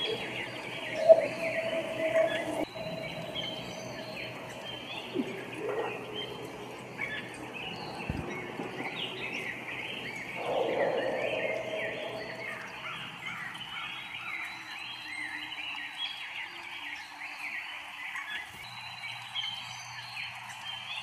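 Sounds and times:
high chirps chorus: 0.0 - 14.7
rushing swell: 10.4 - 13.4.

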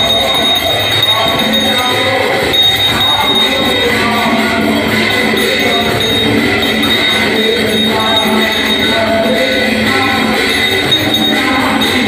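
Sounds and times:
devotional music: 0.0 - 12.0
hand bells and cymbals jangling: 0.0 - 12.0.

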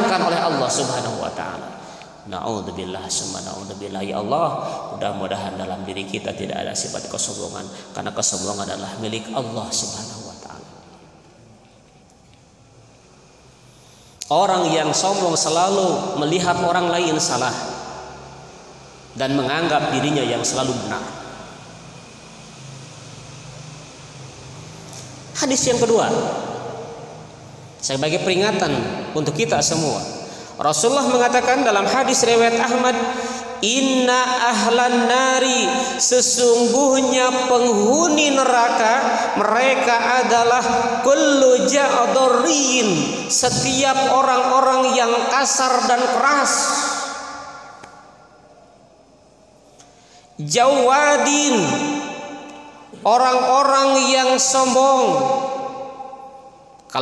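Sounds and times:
echo of spoken word: 0.0 - 11.0, 24.9 - 48.6, 50.4 - 57.0
faint hiss: 0.0 - 57.0
steady low hum: 0.0 - 57.0.

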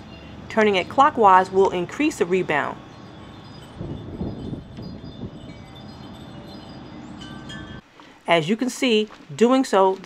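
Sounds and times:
light chime tones: 2.8 - 7.8
wind rumble on microphone: 2.8 - 7.8.

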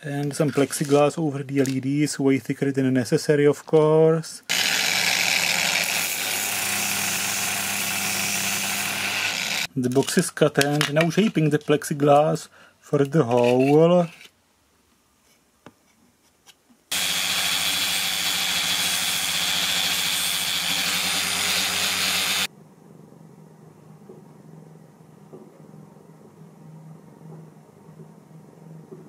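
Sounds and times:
angle grinder sanding plastic: 4.5 - 9.7, 16.9 - 22.5.

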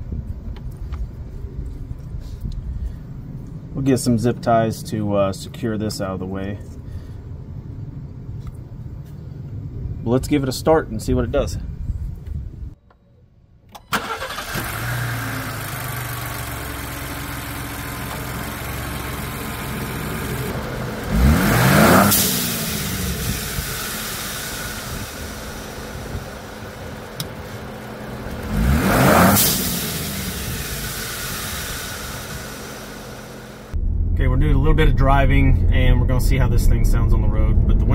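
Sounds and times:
car engine starting and idling: 13.7 - 37.9
engine revving: 14.0 - 35.0
blow-off valve hiss: 21.5 - 27.6, 28.8 - 33.8.

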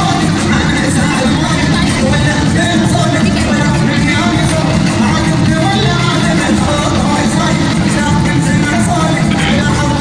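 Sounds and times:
music over loudspeakers: 0.0 - 10.0.

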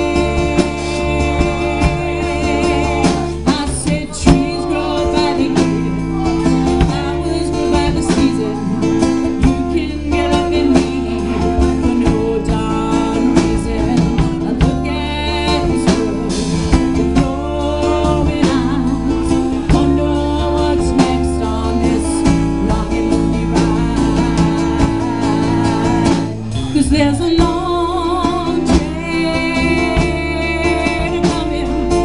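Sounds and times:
bass guitar: 0.0 - 32.0
drum kit: 0.0 - 32.0
lead vocal singing: 0.0 - 32.0
strummed guitar: 0.0 - 32.0.

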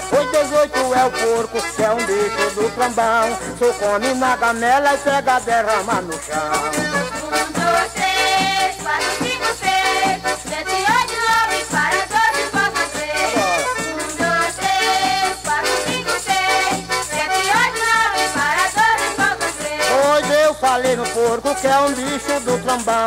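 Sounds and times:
folk band melody with pitch slides: 0.0 - 23.0
rattle and percussion rhythm: 0.0 - 23.0.

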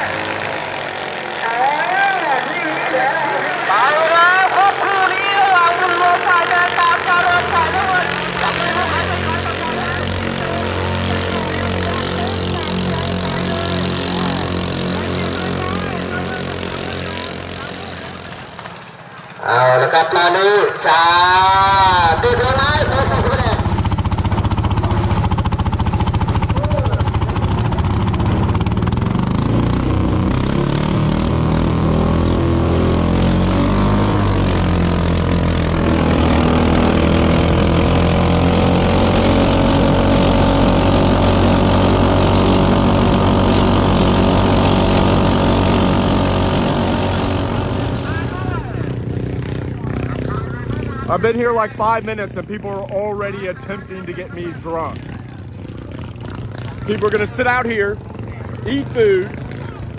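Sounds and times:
tractor engine running flat out: 0.0 - 59.9.

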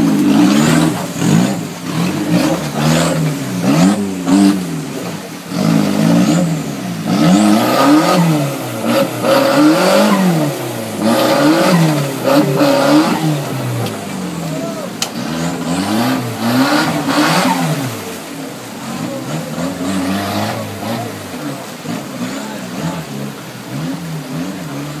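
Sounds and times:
buggy engine revving: 0.0 - 25.0.

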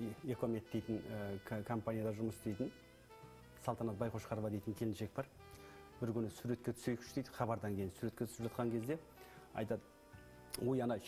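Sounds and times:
man talking: 0.0 - 2.8, 3.6 - 5.4, 6.0 - 9.9, 10.5 - 11.0.

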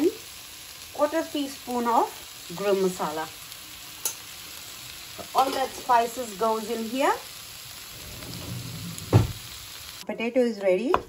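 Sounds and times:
potatoes sizzling in oil: 0.0 - 10.0.

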